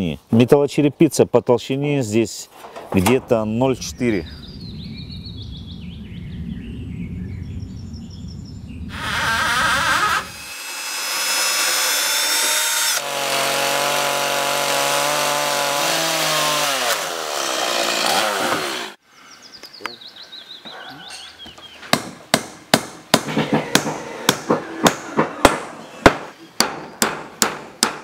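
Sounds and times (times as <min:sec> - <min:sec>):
low rumble: 0:03.2 - 0:10.4
chainsaw cutting wood: 0:08.9 - 0:19.0.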